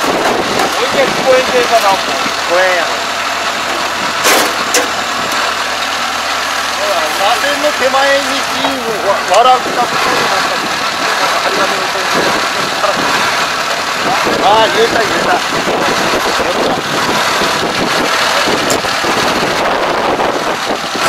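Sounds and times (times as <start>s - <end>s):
diesel engine running: 0.0s - 21.0s.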